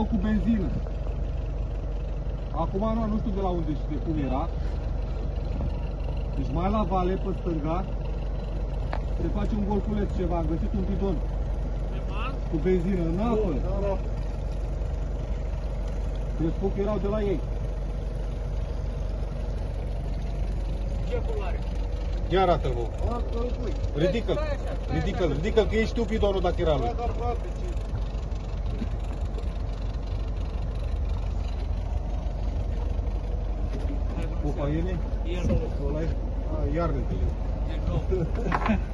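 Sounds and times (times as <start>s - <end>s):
boat engine idling: 0.0s - 38.9s.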